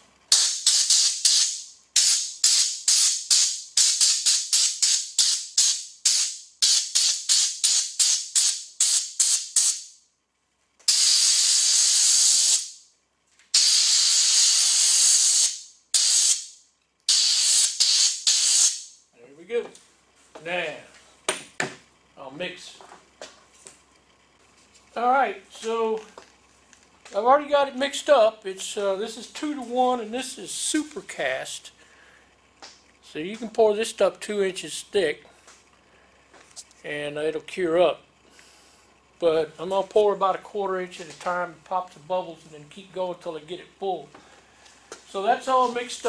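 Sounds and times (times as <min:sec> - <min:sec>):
air blow gun hissing: 0:00.3 - 0:09.8, 0:10.9 - 0:12.8, 0:13.5 - 0:16.5, 0:17.1 - 0:18.9.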